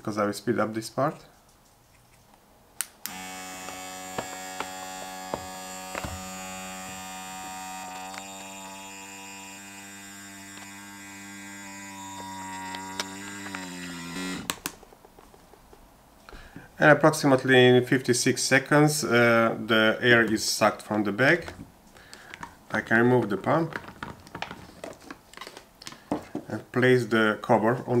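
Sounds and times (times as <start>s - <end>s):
vacuum pump motor hum: 3.1s - 14.5s.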